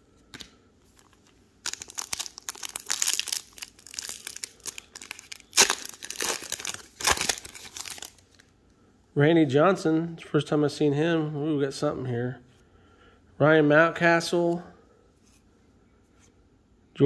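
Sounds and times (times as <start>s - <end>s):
foil wrapper crinkling: 0.9s - 8.5s
foil wrapper ripping: 1.6s - 8.4s.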